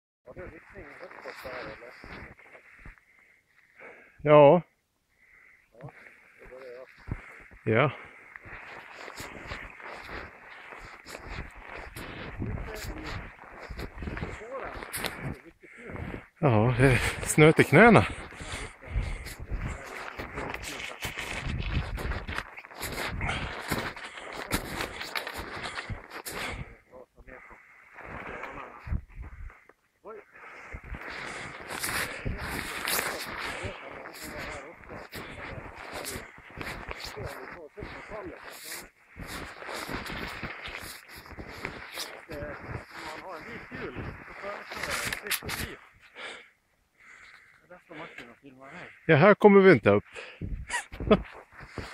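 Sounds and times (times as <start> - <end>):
footsteps crunching through snow: 0.3 - 3.0, 6.0 - 46.4, 50.0 - 51.9
heavy breathing: 0.6 - 4.2, 5.1 - 49.1, 50.0 - 51.9
wordless voice sounds: 5.8 - 8.2, 9.5 - 22.2, 30.0 - 46.3.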